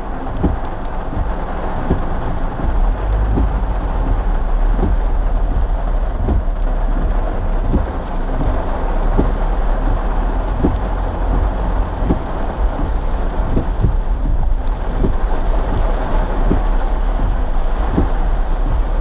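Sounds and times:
rain on car roof: 0.0 - 19.0
road rumble: 0.0 - 19.0
low knocks: 0.3 - 19.0.

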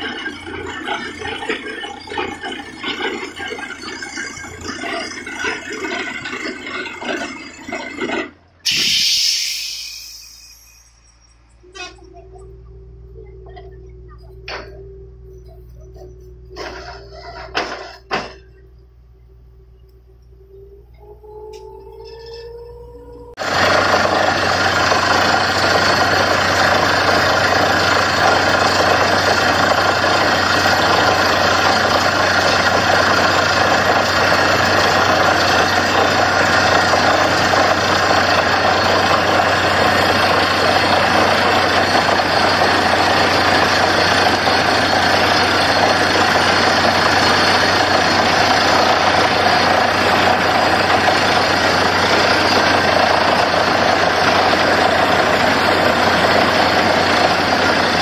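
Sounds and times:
drilling rig engine and drilling: 0.0 - 58.0.

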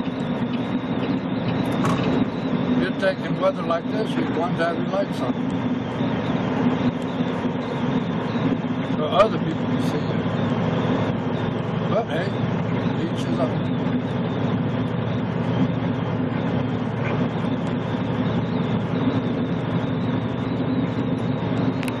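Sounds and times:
truck engine and tyre drone: 0.0 - 22.0.

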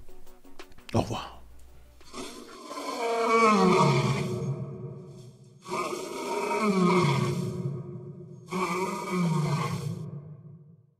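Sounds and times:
lion roaring with echo: 2.0 - 10.7.

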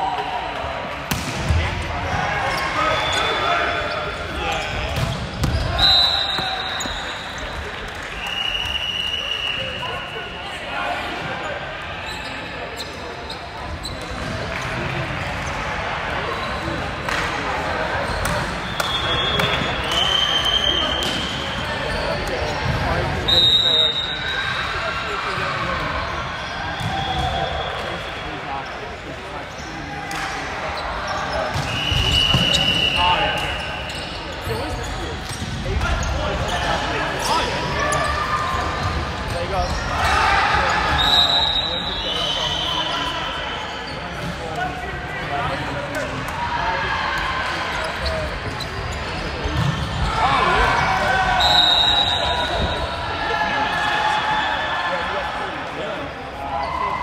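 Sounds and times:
sneakers squeaking on floor: 2.4 - 10.6, 11.2 - 14.6, 18.0 - 25.4, 30.7 - 44.7, 47.7 - 53.0.

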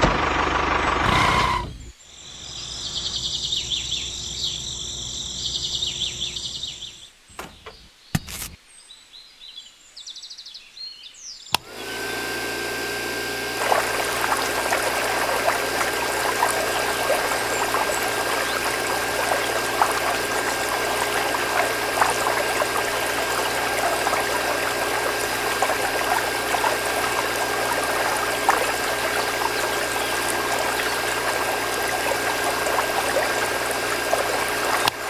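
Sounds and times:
water pump humming: 0.0 - 1.8, 11.6 - 35.0
pump switch click: 11.5 - 11.8
water pouring into plastic tank: 13.2 - 35.0.

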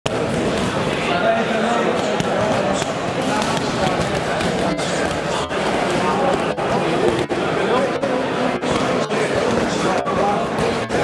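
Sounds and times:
people talking: 0.1 - 11.0.

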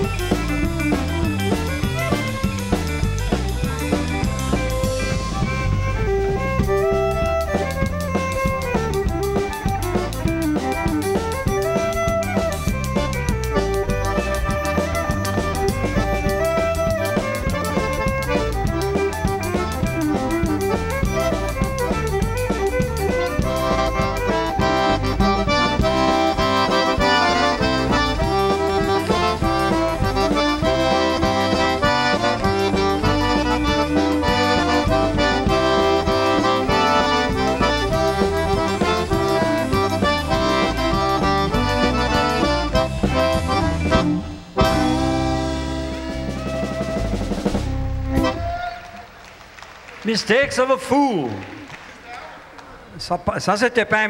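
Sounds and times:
drum kit beat: 0.0 - 49.2
fiddle melody: 0.0 - 49.3
accordion: 0.0 - 49.4.

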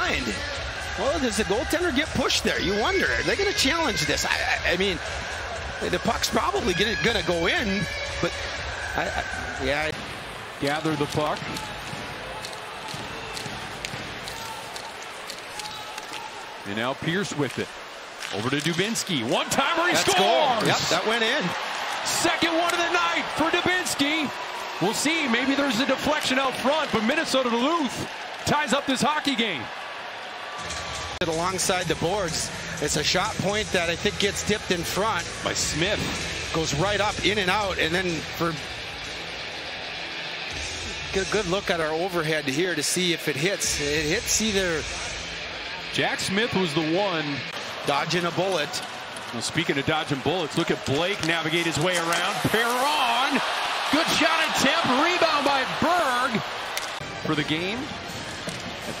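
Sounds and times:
arena crowd noise: 0.0 - 59.0
hockey sticks and puck clacking: 10.0 - 28.8, 47.5 - 59.0.

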